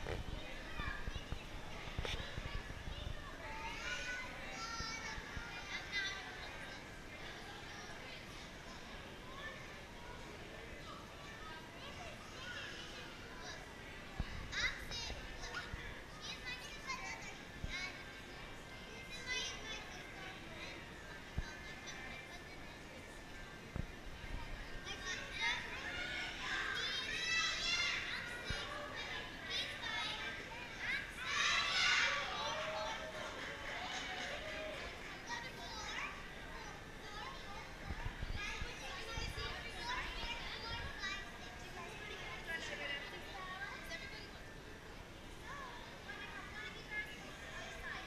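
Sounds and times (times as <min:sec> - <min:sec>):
murmur of people talking: 0:00.0 - 0:48.0
young children calling and chattering: 0:00.0 - 0:48.0.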